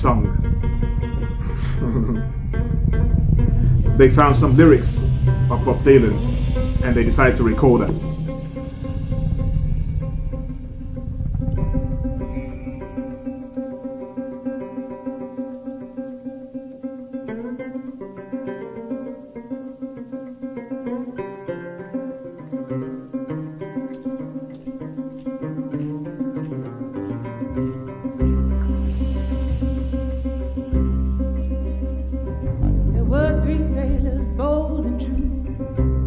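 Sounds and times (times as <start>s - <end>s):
deep bass notes: 0.0s - 15.4s, 25.6s - 36.0s
acoustic guitar notes: 0.0s - 36.0s
picked banjo: 0.0s - 36.0s.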